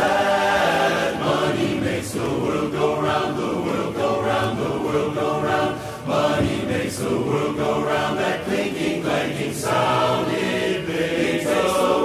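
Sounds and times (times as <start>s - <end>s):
men's chorus singing a cappella: 0.0s - 12.0s.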